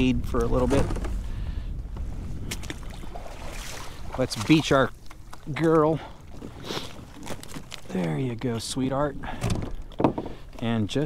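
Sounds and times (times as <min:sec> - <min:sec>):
wind rumble on microphone: 0:00.0 - 0:05.0.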